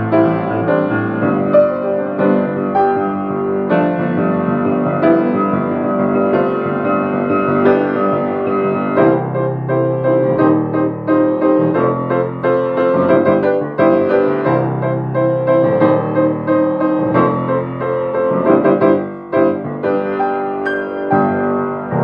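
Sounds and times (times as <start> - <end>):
piano chords and melody: 0.0 - 22.0.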